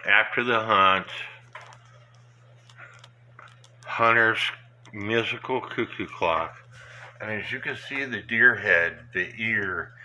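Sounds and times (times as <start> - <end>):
steady low hum: 0.0 - 10.0
faint clicks: 1.4 - 3.9.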